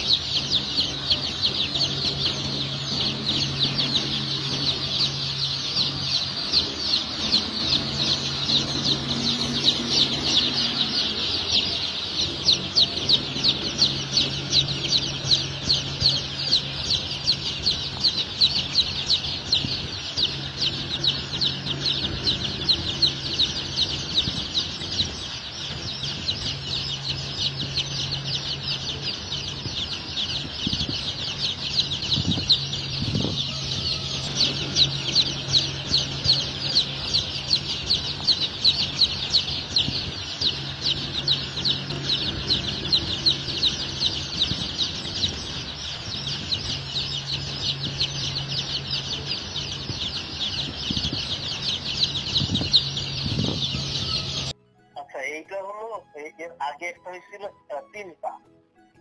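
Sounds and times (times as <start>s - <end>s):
low steady hum: 0.0s - 58.3s
chicks peeping rapidly: 0.0s - 58.5s.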